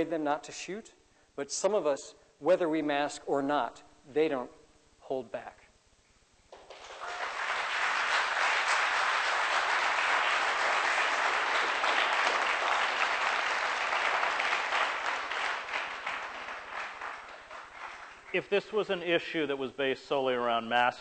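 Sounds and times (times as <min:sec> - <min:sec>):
audience applauding: 0:06.5 - 0:18.5.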